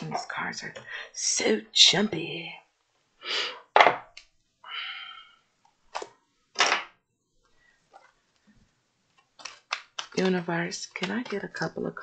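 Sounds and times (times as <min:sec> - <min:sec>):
cards being shuffled by hand: 0:09.1 - 0:11.6.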